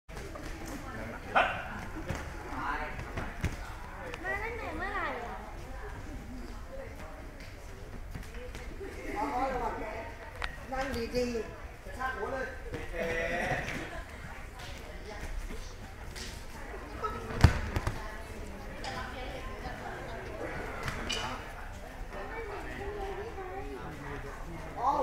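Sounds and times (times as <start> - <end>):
room hubbub: 0.1 - 25.0.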